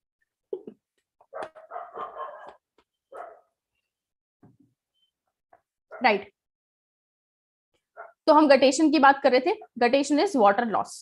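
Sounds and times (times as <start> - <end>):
dog barking: 1.2 - 3.6, 5.9 - 6.2, 7.9 - 8.2.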